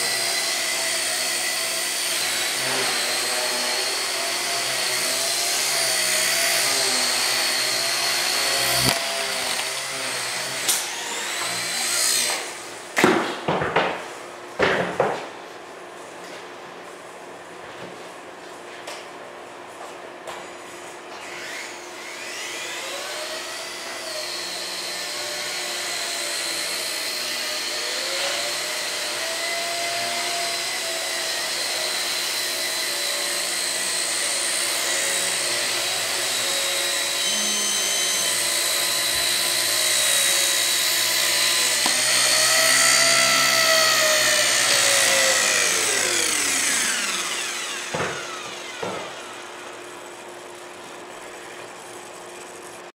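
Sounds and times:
toy helicopter rotor whine: 0:00.0 - 0:12.6, 0:21.2 - 0:52.9.

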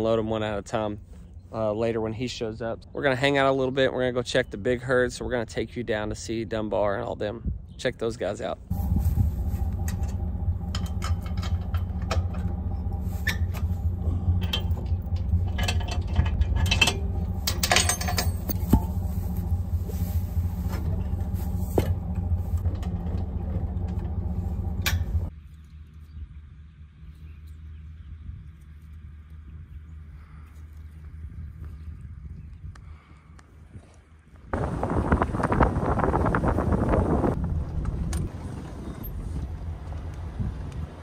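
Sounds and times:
truck engine idling: 0:08.7 - 0:25.3
metal clinks and rattles: 0:09.7 - 0:25.3.

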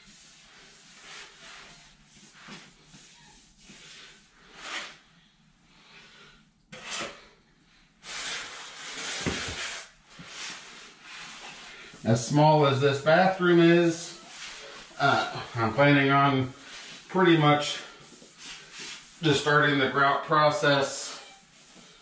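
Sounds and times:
sponge wiping tile floor: 0:00.0 - 0:07.3, 0:08.0 - 0:22.0.

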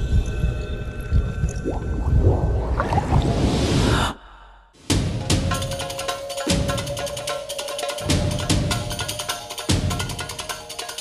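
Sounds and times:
low rumble: 0:00.0 - 0:04.7.

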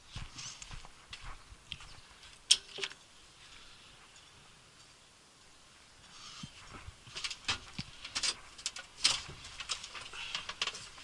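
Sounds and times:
small clicks and rustling: 0:06.4 - 0:11.0.

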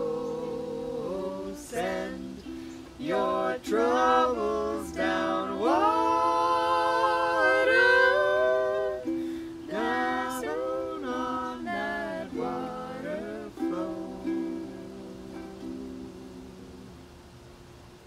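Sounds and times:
people singing: 0:00.0 - 0:16.9
ukulele: 0:00.0 - 0:18.0.

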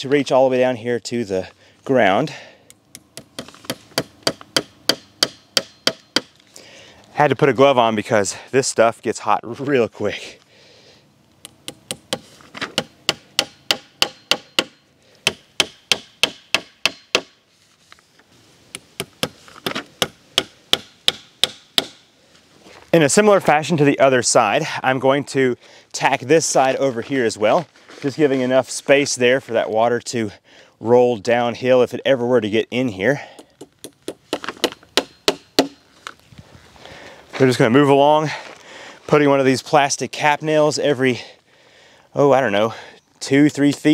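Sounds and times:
hammer striking nails: 0:02.9 - 0:06.3, 0:11.6 - 0:17.4, 0:19.0 - 0:22.0, 0:33.6 - 0:35.8.

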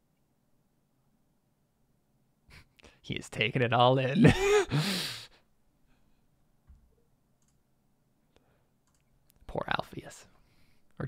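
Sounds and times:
faint clicks: 0:07.4 - 0:07.6, 0:08.8 - 0:09.4.

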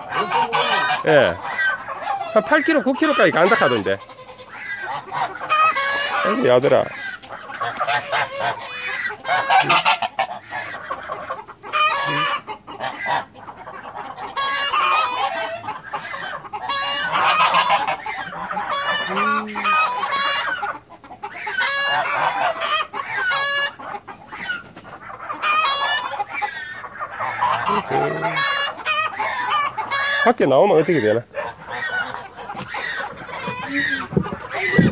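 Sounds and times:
geese honking: 0:00.0 - 0:34.9.

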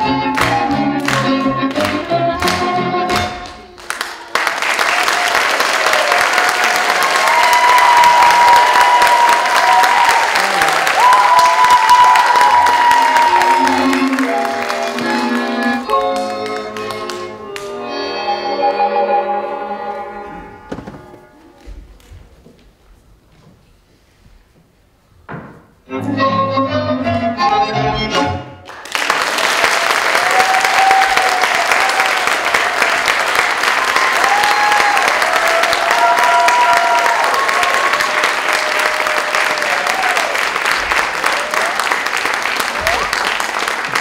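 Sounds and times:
folk dance music: 0:00.0 - 0:04.3, 0:06.7 - 0:23.2, 0:25.4 - 0:28.8
audience applause: 0:03.2 - 0:17.8, 0:28.6 - 0:44.0.

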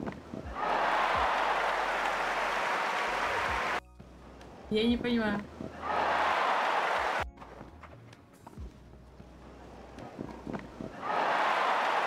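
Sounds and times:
crowd applause: 0:00.4 - 0:03.8, 0:05.7 - 0:07.3, 0:10.9 - 0:12.0
player footsteps: 0:07.0 - 0:11.0.

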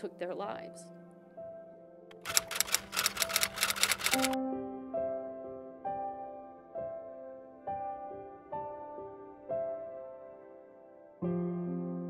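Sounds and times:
soft background music: 0:00.0 - 0:12.0
rapid sharp clicks like typing: 0:02.1 - 0:04.4.

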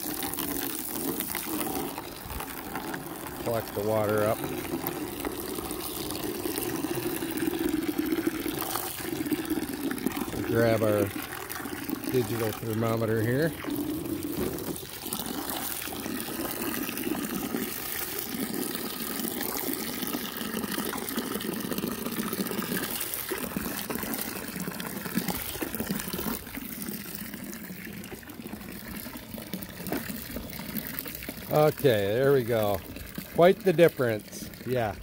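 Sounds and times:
hose water pouring into bucket: 0:00.0 - 0:35.0.

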